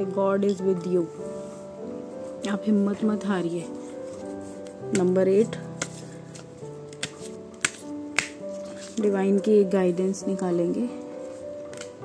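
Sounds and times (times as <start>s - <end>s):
soft background music: 0.0s - 12.0s
sharp taps of cards: 6.9s - 8.4s.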